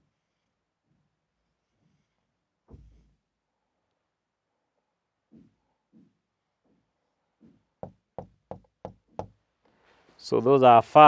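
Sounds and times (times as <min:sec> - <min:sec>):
marker tapping on whiteboard: 0:07.4 - 0:09.4.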